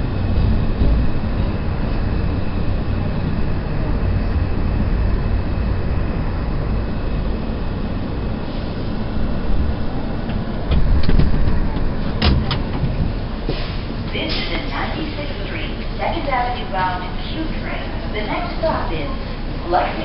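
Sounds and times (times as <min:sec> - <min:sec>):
subway train rumbling: 0:00.0 - 0:20.0.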